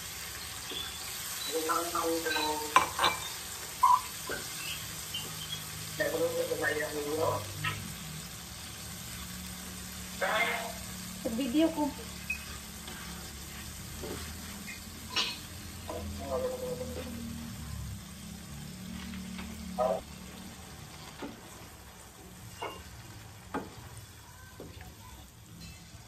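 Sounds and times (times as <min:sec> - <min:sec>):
garlic sizzling in oil: 0:00.0 - 0:26.0
spatula scraping and knocking pan: 0:12.1 - 0:17.4, 0:22.5 - 0:24.0.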